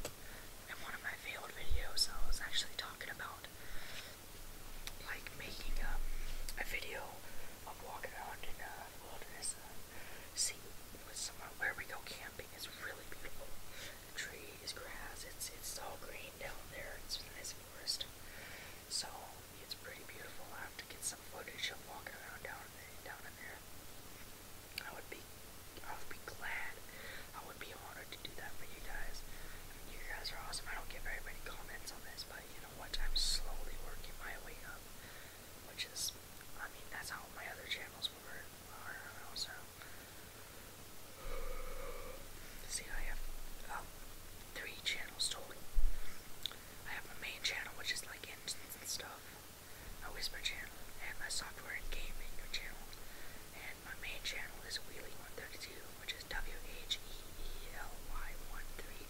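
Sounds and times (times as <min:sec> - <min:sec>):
person whispering: 0:00.7 - 0:04.1, 0:04.9 - 0:18.1, 0:18.9 - 0:23.6, 0:24.8 - 0:25.2, 0:25.8 - 0:34.8, 0:35.7 - 0:39.8, 0:41.1 - 0:43.9, 0:44.5 - 0:45.7, 0:46.4 - 0:49.3, 0:50.0 - 0:59.0.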